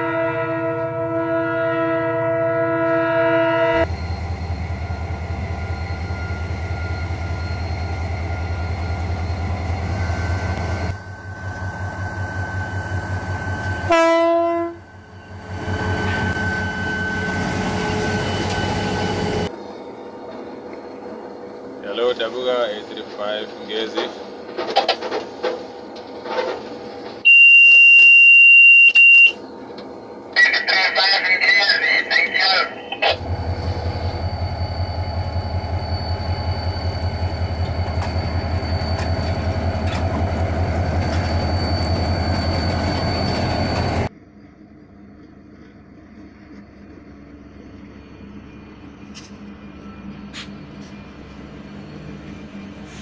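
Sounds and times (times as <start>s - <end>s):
locomotive cab running noise: 3.8s - 53.0s.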